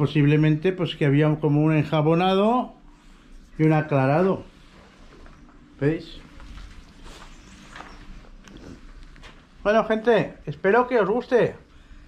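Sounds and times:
soft footsteps on dusty floor: 0:02.9 - 0:09.7.

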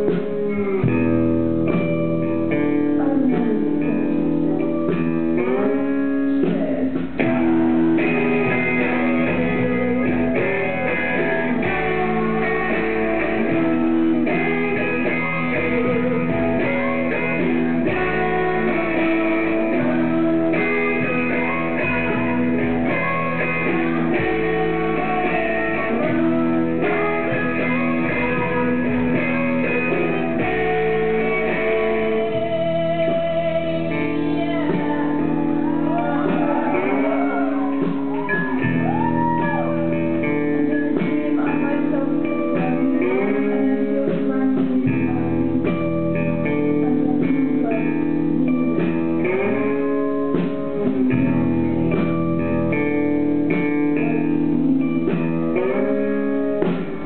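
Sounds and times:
drum kit beat: 0:00.0 - 0:57.0
live band with electric guitar: 0:00.0 - 0:57.0
woman singing: 0:02.5 - 0:51.2.

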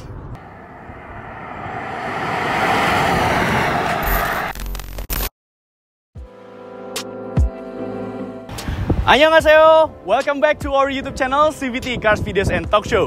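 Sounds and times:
car driving past: 0:00.4 - 0:04.6
music: 0:06.2 - 0:13.0.

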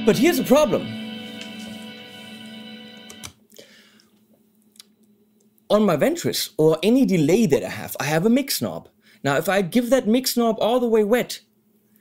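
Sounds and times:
electric guitar chord ringing: 0:00.0 - 0:03.3.

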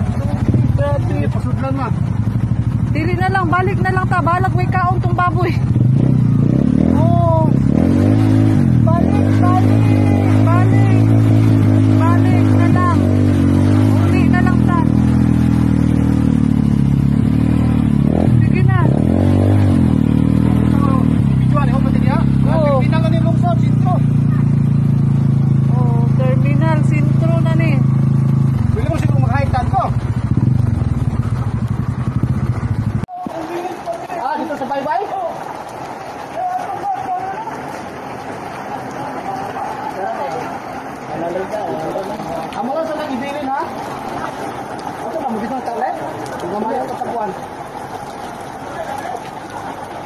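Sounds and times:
small motorcycle engine running: 0:00.0 - 0:33.0.

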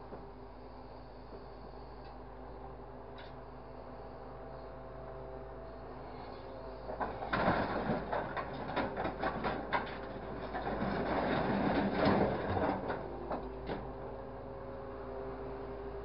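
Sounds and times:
steady machine hum: 0:00.0 - 0:16.0.

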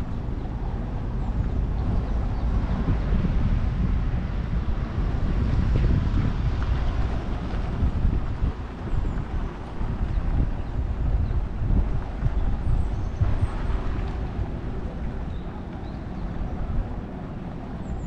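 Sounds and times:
faint city background: 0:00.0 - 0:18.0
wind buffeting microphone: 0:00.0 - 0:18.0.

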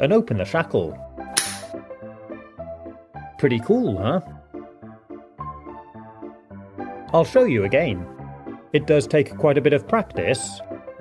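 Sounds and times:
background music: 0:00.0 - 0:11.0
padlock shackle snapping open: 0:01.4 - 0:01.7.

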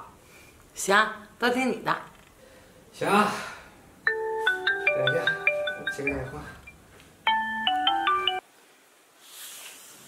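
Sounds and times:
mobile phone ringtone melody: 0:04.1 - 0:08.4.

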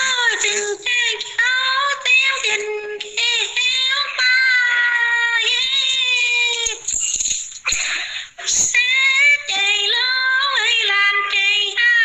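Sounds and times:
woman singing unaccompanied folk song: 0:00.0 - 0:06.8, 0:08.4 - 0:12.0.

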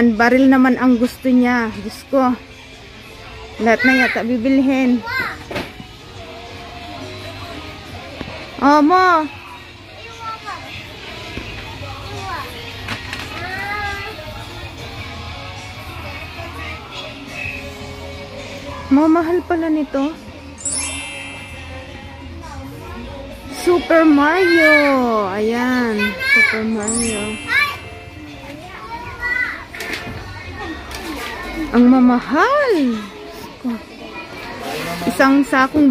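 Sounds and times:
high-pitched child's voice: 0:05.0 - 0:05.4, 0:26.0 - 0:27.9
children's voices: 0:11.8 - 0:14.6, 0:22.4 - 0:31.8.

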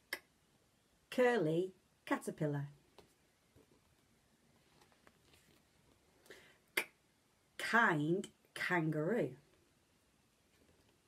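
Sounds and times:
soft hiss: 0:00.0 - 0:11.0.

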